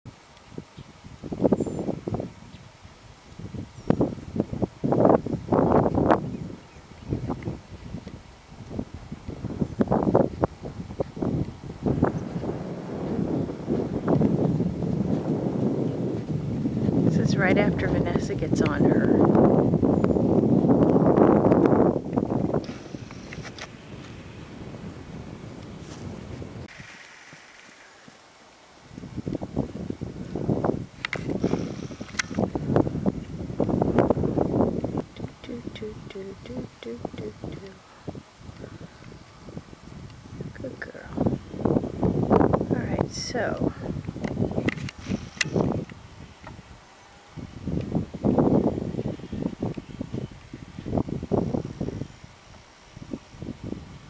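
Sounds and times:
wind buffeting microphone: 0.0 - 54.0
outdoor hiss: 19.3 - 54.0.

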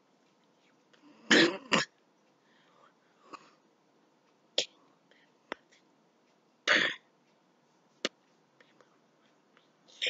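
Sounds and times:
person coughing: 1.2 - 1.9, 6.7 - 7.1.

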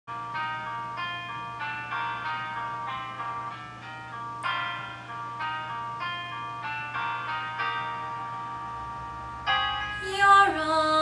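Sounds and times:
ringing pitched notes: 0.1 - 11.0.

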